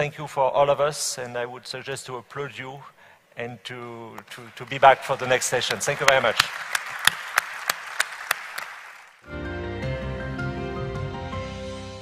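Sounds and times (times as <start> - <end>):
audience applauding: 4.2 - 9.2
single claps: 4.2 - 9.2.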